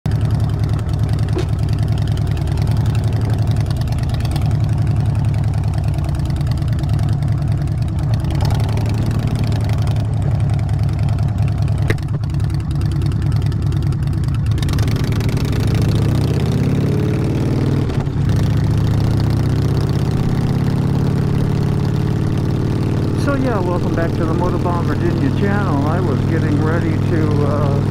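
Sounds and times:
motorcycle engine idling: 0.1 - 16.8, 17.6 - 27.9.

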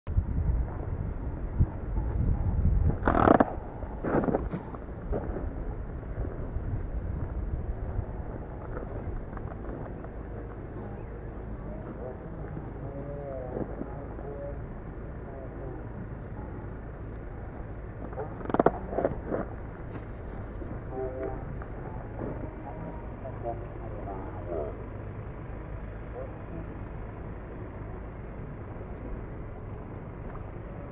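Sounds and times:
wind rumbling on microphone: 0.1 - 30.9
distant voices of people: 0.3 - 30.9.

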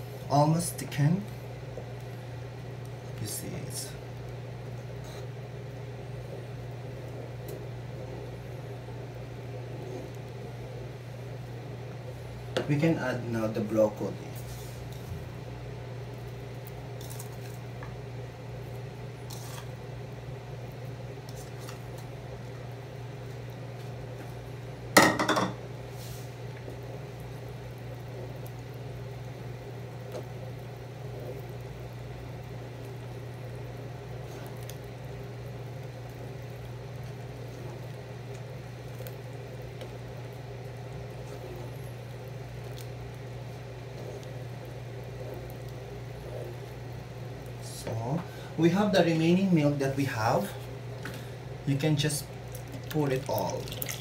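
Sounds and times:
steady low hum: 0.0 - 54.0
wooden spoon stirring soup: 29.6 - 48.3.

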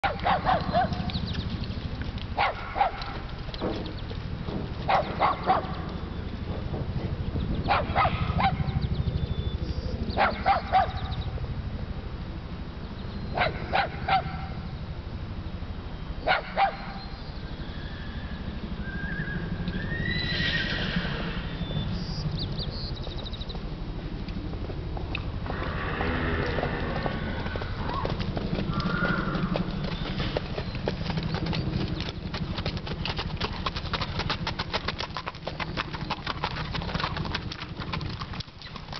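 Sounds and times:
steady low rumble: 0.2 - 16.3, 20.8 - 38.4
horse whinnying: 17.6 - 21.8, 25.4 - 30.4.

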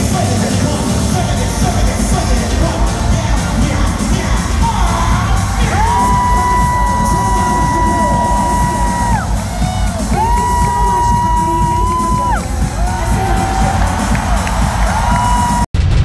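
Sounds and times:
live concert music with bass beat: 0.0 - 15.7
crowd cheering and whooping: 1.3 - 15.7.

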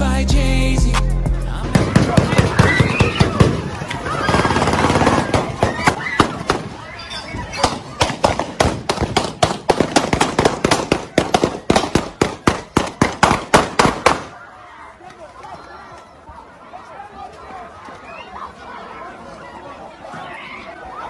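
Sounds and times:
sharp bangs: 1.6 - 6.9, 7.6 - 14.4.

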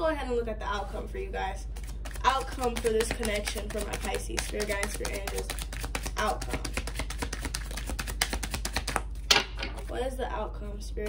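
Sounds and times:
cards being shuffled: 1.7 - 10.0
card snap: 2.2 - 9.0.

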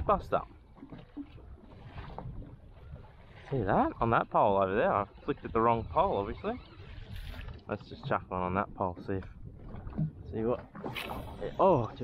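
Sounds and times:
water lapping against boat hull: 0.0 - 12.0.

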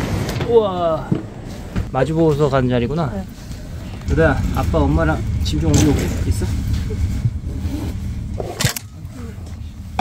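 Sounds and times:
low steady rumble: 1.0 - 10.0.

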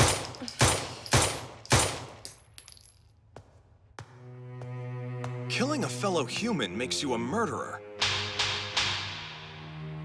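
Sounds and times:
pistol shots: 0.0 - 2.2.

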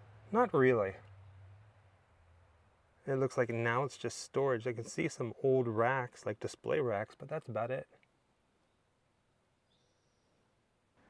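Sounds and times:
low hum: 0.0 - 3.9.

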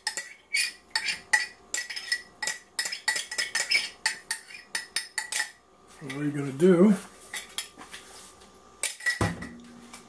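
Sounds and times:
utensil clinking on metal pot: 0.0 - 5.6.

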